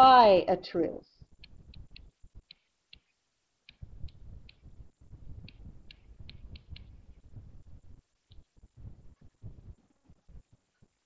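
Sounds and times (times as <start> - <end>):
computer mouse clicks: 1.4 - 4.7, 5.4 - 7.0, 8.3 - 8.5.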